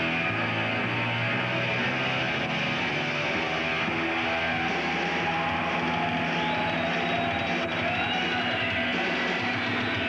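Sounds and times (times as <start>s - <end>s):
distorted electric guitar: 0.0s - 10.0s
heavy metal band playing live: 0.0s - 10.0s.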